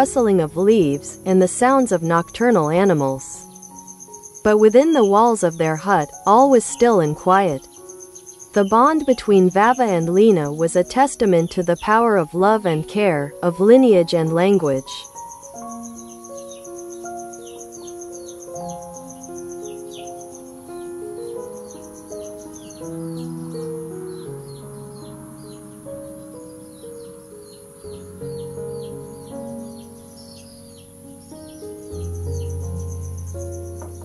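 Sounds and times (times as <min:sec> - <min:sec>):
bird chirps: 0:00.0 - 0:13.2, 0:13.9 - 0:34.0
cricket trill: 0:00.0 - 0:13.2, 0:14.4 - 0:34.0
soft background music: 0:00.0 - 0:34.0.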